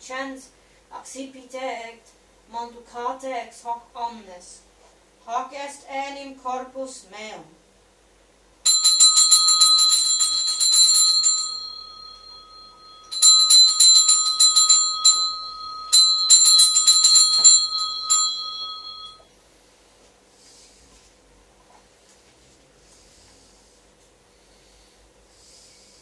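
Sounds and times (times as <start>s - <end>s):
altar bell ringing: 8.6s - 19.3s.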